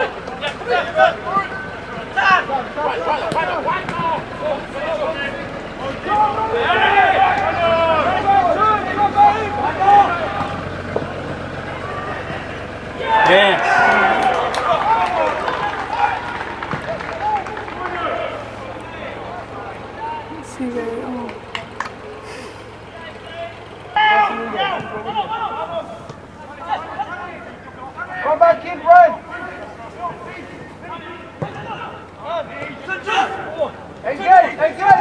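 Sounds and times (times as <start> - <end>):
players shouting: 0.0 - 35.0
steady background hum: 0.0 - 35.0.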